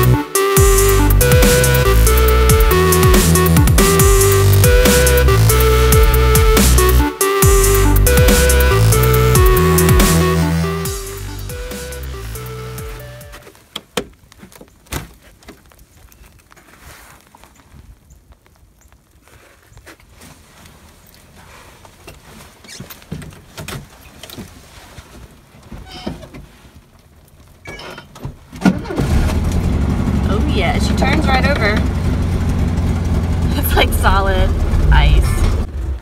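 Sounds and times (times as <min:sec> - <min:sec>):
car engine starting: 0:00.0 - 0:13.4, 0:28.4 - 0:36.0
electronic music: 0:00.0 - 0:13.4.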